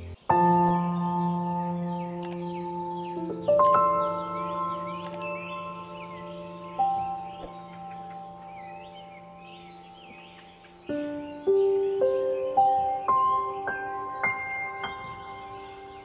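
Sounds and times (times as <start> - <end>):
bird chirps: 0.0 - 16.0
chime-like mallet notes: 4.8 - 10.1.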